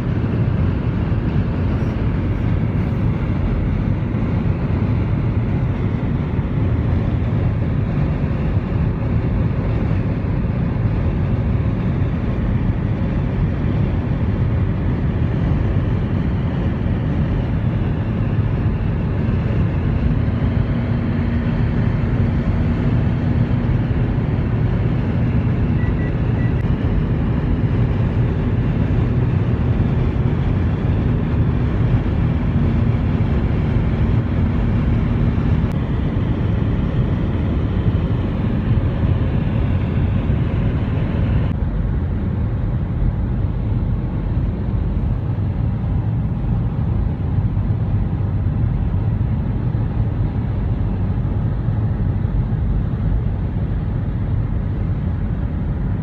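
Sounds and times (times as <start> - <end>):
road and engine rumble in car: 0.0 - 56.0.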